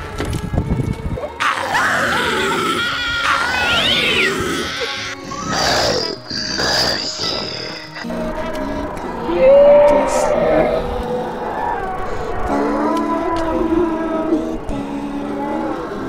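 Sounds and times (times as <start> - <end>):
background music: 0.0 - 16.0
person screaming: 1.4 - 8.0, 9.0 - 15.6.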